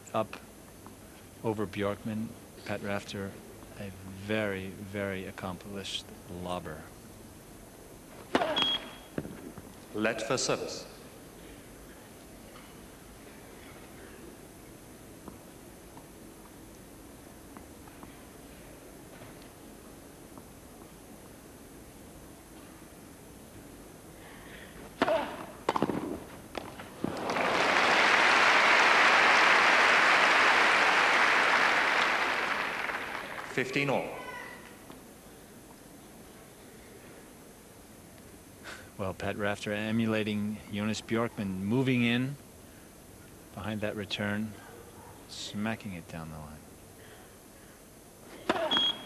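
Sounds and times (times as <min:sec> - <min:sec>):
racquets hitting tennis ball: 0:24.8 - 0:27.4
crowd applause: 0:27.0 - 0:33.9.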